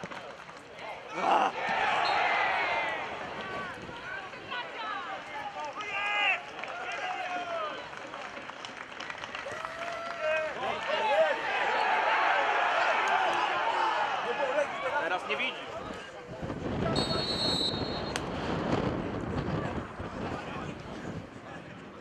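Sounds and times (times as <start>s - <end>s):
crowd noise: 0.0s - 22.0s
players and spectators shouting: 0.8s - 7.8s, 9.4s - 16.1s
short high whistle blast: 17.0s - 18.2s.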